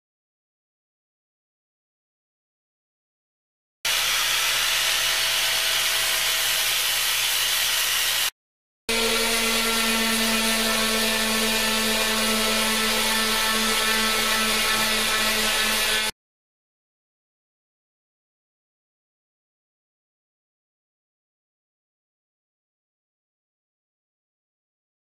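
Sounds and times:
angle grinder grinding horn: 3.9s - 8.3s, 8.9s - 16.1s
orbital sander humming: 3.9s - 8.3s, 8.9s - 16.1s.

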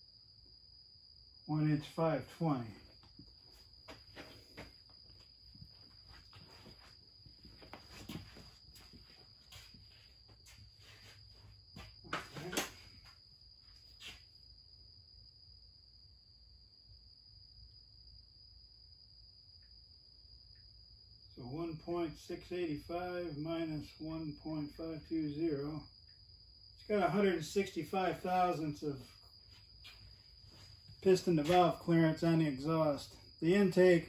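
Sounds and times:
footsteps: 2.9s - 14.3s, 29.4s - 31.9s
scrape: 9.5s - 11.3s.

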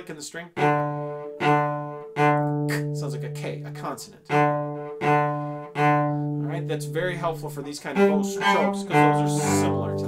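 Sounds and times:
cello bow strokes on low note: 0.5s - 10.0s.

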